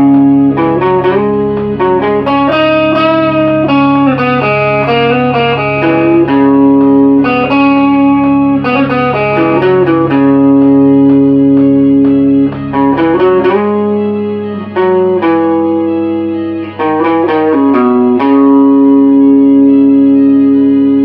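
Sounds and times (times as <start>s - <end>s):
electric guitar sustained melody: 0.0s - 21.0s
steady low drone note: 0.0s - 21.0s.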